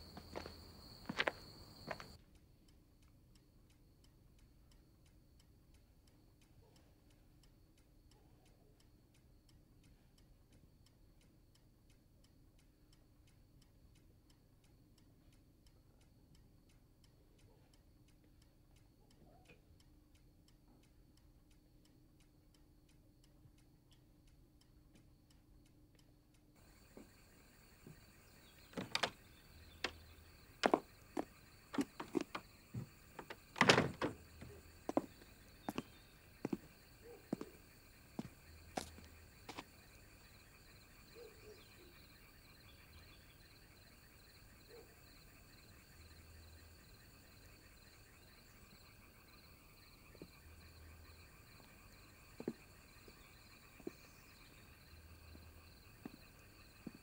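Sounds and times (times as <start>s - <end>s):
clock ticking: 1.9s - 42.2s
sharp knocks: 28.7s - 29.1s.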